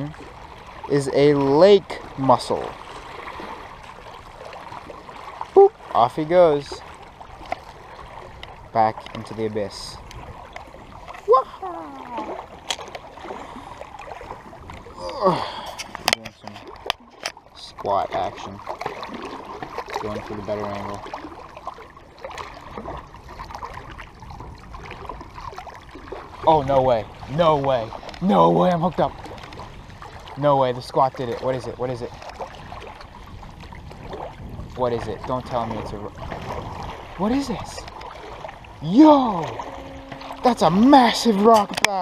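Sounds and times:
water splashing and gurgling: 0.0 - 42.0
waves lapping on rocky shore: 0.0 - 42.0
person speaking: 28.2 - 29.0, 38.8 - 42.0.

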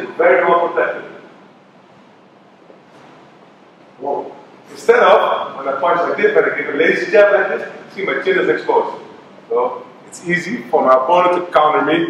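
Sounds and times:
faint room tone hiss: 0.0 - 12.0.

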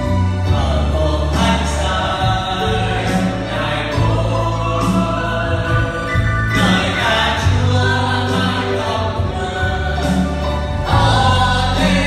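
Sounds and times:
electronic keyboard chords: 0.0 - 12.0
group singing gospel song: 0.0 - 12.0
man singing into microphone: 0.4 - 12.0.

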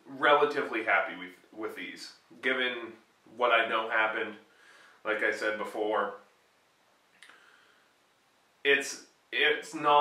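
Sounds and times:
man speaking: 0.0 - 6.3, 8.6 - 10.0
faint click: 7.1 - 7.4.

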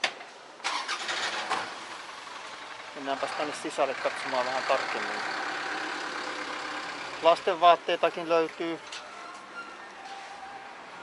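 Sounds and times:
steady traffic hum: 0.0 - 11.0
motor vehicle engine: 0.7 - 11.0.

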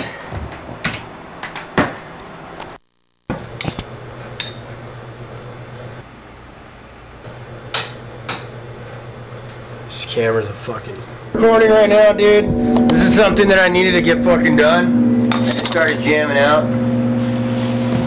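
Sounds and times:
low steady hum: 11.3 - 18.0.

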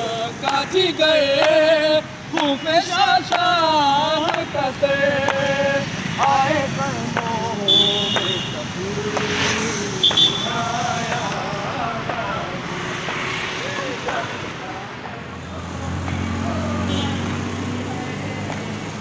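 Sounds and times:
road traffic: 0.0 - 19.0
engine humming past: 3.2 - 14.3, 15.1 - 19.0
vehicle horn beep: 7.6 - 8.6, 10.0 - 10.7, 16.8 - 17.4
men talking: 13.5 - 18.8.

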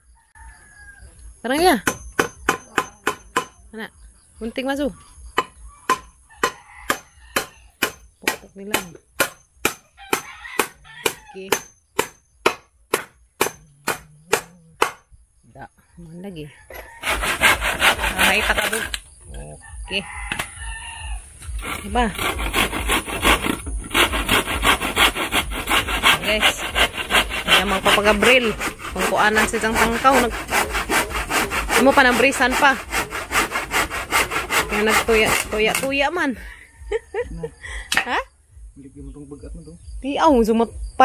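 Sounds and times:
hammer knocking on wood: 1.6 - 3.6, 5.4 - 15.0
handsaw cutting wood: 17.0 - 19.0, 21.4 - 35.9.

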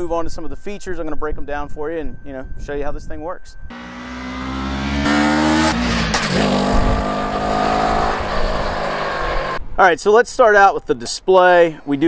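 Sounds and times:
motorcycle engine passing: 3.7 - 9.6.

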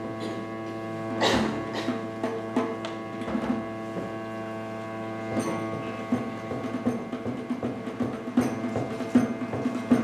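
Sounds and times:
bowed viola da gamba: 0.0 - 10.0.

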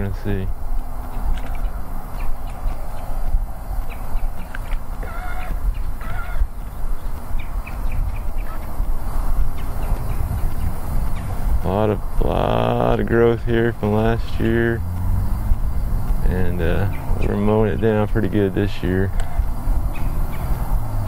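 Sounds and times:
wind buffeting microphone: 0.0 - 21.0
bird calling: 1.0 - 11.4, 12.0 - 20.7.

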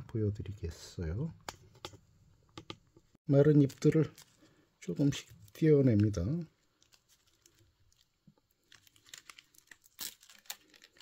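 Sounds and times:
dry leaves crackling and tearing: 8.6 - 11.0.

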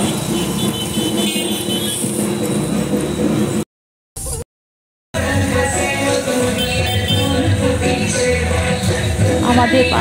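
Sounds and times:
motorbikes and scooters: 0.0 - 3.6, 5.2 - 10.0
street traffic: 0.0 - 4.5, 5.2 - 10.0
music: 5.2 - 10.0.

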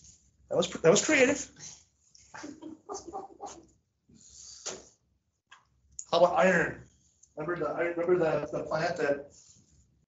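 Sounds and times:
people talking: 0.5 - 1.5, 6.0 - 6.8, 7.4 - 9.3
soft laughter: 2.4 - 3.7.

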